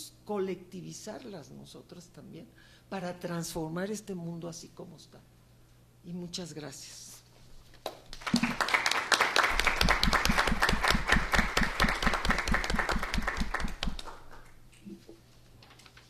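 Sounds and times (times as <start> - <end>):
evenly paced loud claps: 7.8 - 14.5
audience applauding: 8.1 - 14.4.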